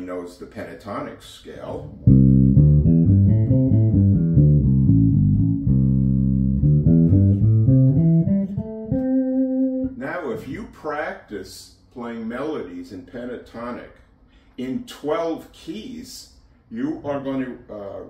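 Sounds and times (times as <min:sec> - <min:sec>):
plucked electric bass guitar: 0:01.9 - 0:10.0.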